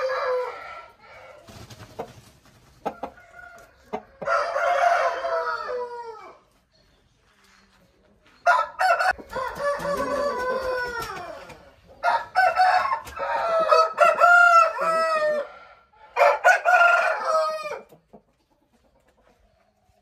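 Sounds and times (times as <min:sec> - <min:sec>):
roosters crowing: 0:00.0 - 0:01.5, 0:02.8 - 0:06.5, 0:08.4 - 0:18.0.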